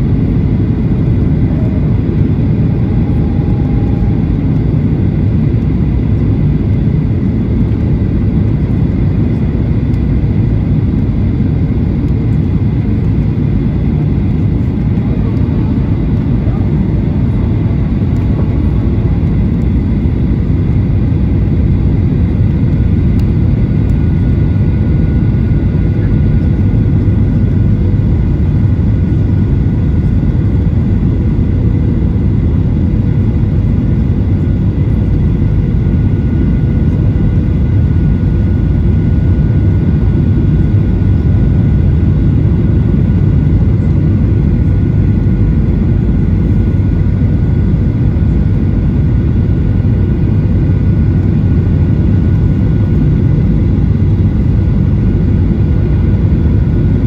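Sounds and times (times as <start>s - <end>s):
airplane cabin engine roar: 0.0s - 57.0s
faint steady whining tones: 0.0s - 57.0s.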